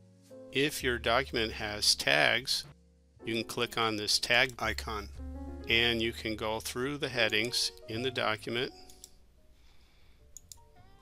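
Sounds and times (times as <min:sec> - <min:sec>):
computer mouse clicks: 0:10.4 - 0:10.6.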